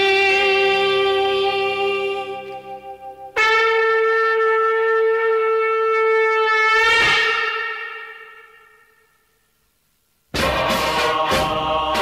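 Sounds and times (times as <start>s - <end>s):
held wind instrument note: 0.0s - 9.3s.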